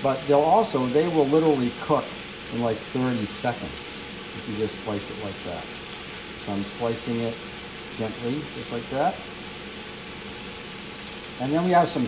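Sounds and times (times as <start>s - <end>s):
food sizzling in a wok: 0.0s - 12.0s.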